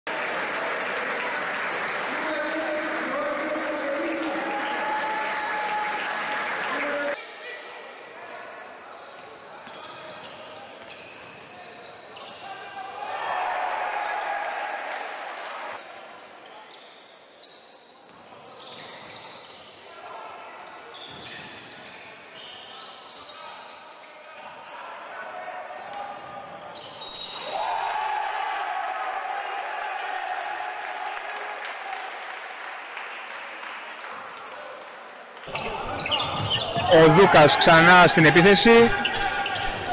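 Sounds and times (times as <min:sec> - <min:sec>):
crowd cheering: 0:00.0 - 0:07.2, 0:13.0 - 0:15.8, 0:27.4 - 0:33.6, 0:35.4 - 0:39.9
crowd voices: 0:35.4 - 0:39.9.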